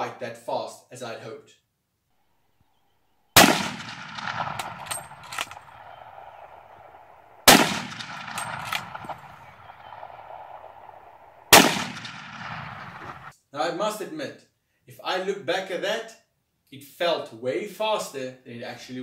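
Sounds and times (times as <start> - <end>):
rifle bolt clicks: 3.4 - 9.3
rifle shots echoing: 3.4 - 13.3.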